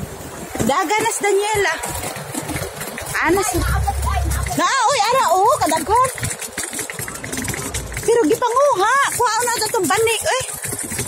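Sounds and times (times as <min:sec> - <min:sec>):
suitcase wheels rolling over bricks: 0:00.5 - 0:11.0.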